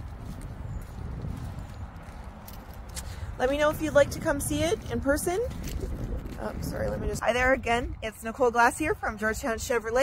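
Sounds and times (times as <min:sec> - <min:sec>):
footsteps on gravel: 0:00.0 - 0:07.9
wind rumbling on microphone: 0:00.0 - 0:10.0.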